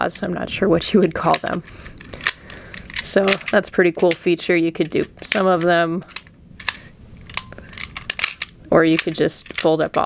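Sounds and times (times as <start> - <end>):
sharp plastic clicks: 1.3 - 10.0.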